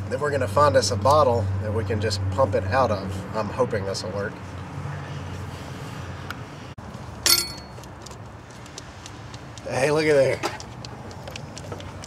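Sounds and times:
sharp clink of hard object: 7.2 - 7.8.

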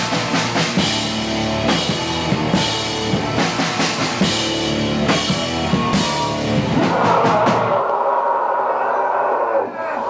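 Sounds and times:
live rock band: 0.0 - 7.8
crowd cheering and shouting: 1.0 - 10.0.

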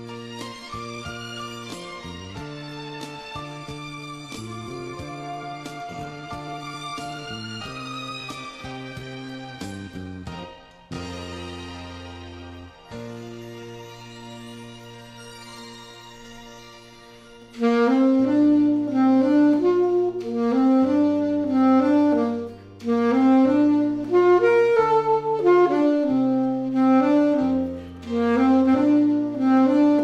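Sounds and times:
alto saxophone melody: 0.0 - 12.0, 12.9 - 30.0
backing track with bass line: 0.0 - 14.9, 17.6 - 30.0.

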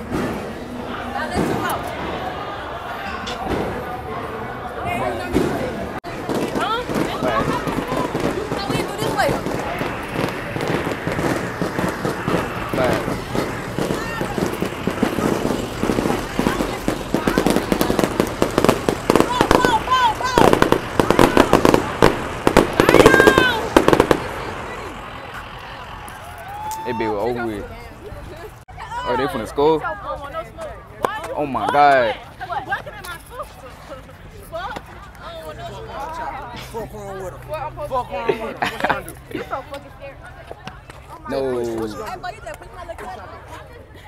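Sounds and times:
young people shouting and screaming: 0.5 - 33.6
firecrackers popping: 5.3 - 27.4.

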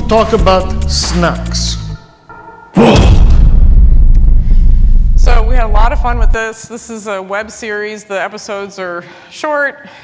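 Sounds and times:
sharp hit: 2.3 - 6.4
deep rumble over speakers: 3.1 - 6.4.

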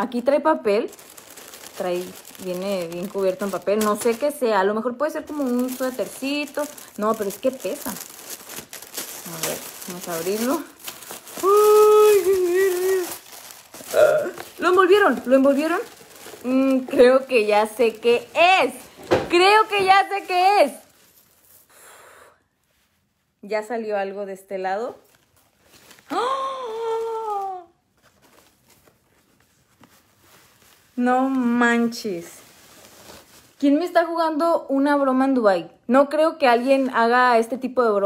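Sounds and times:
tissue paper crinkling: 0.0 - 21.7, 24.9 - 34.0.

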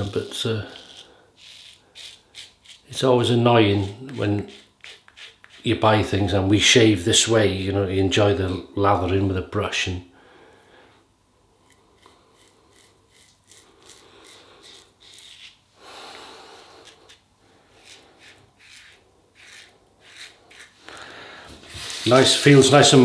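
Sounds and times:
razor scraping stubble: 0.0 - 6.0, 11.6 - 15.6, 16.6 - 21.0, 21.6 - 23.0.

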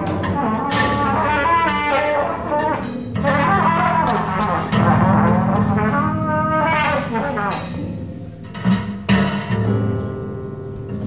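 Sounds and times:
trumpet phrase: 0.0 - 8.0.

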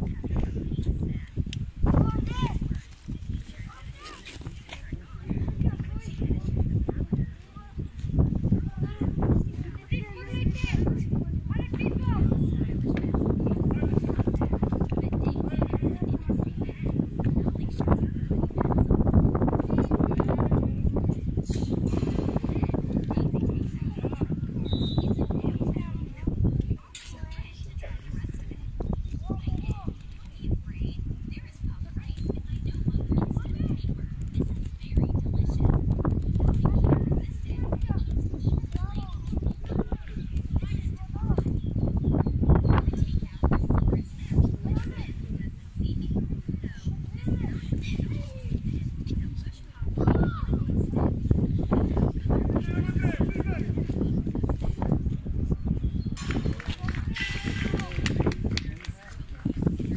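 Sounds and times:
wind on microphone: 0.0 - 59.9.

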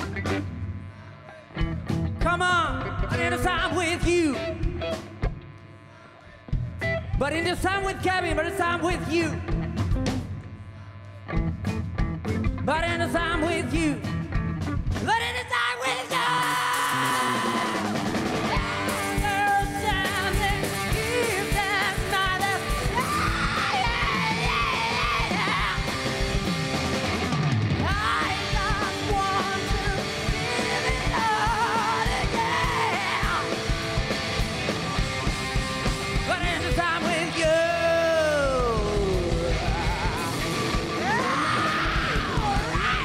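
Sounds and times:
rock band playing: 0.0 - 5.7, 6.4 - 10.7, 11.3 - 43.0
man singing wordless notes: 2.2 - 4.6, 7.2 - 9.5, 12.7 - 14.2, 36.3 - 40.3.

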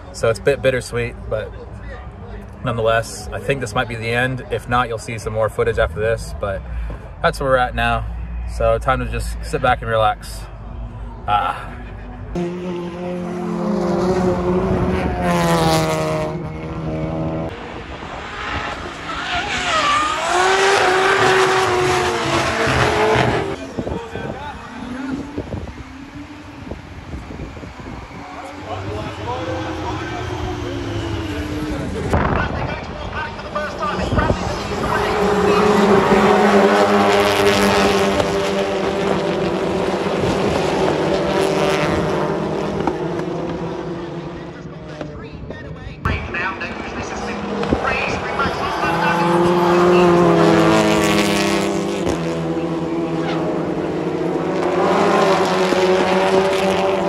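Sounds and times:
car engines revving: 0.0 - 57.0
tyre squeal: 19.1 - 21.0.

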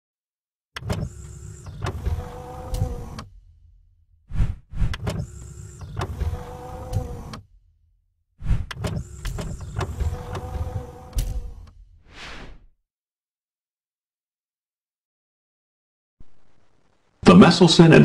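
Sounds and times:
mechanical clicks and clunks: 0.8 - 3.5, 4.8 - 7.6, 8.6 - 12.0
motorised mechanism whirring: 0.8 - 3.5, 4.3 - 7.6, 8.4 - 12.0.

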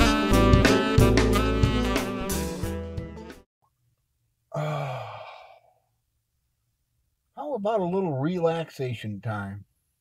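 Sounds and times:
jazz music with saxophone: 0.0 - 3.4
man sighing: 4.5 - 5.9.

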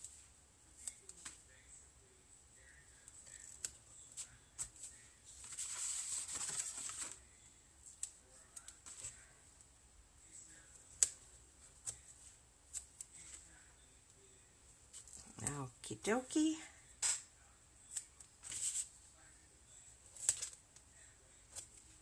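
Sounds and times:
tape and cardstock rustling: 3.0 - 7.2, 17.9 - 19.0, 20.1 - 20.9.

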